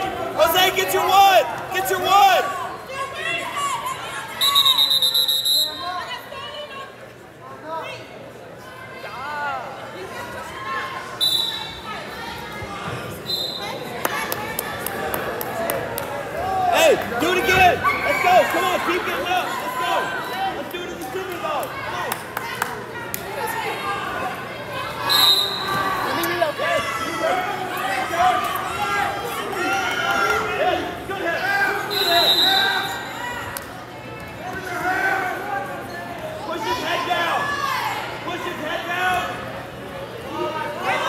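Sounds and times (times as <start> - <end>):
gym chatter: 0.0 - 41.0
spectators and coaches calling out: 0.0 - 41.0
referee's whistle blasts: 4.4 - 5.9, 11.2 - 11.8, 13.3 - 13.8, 25.0 - 25.8, 31.9 - 33.1.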